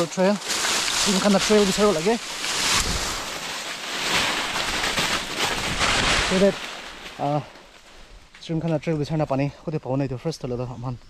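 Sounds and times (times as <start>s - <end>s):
leaves and brush rustling: 0.0s - 11.0s.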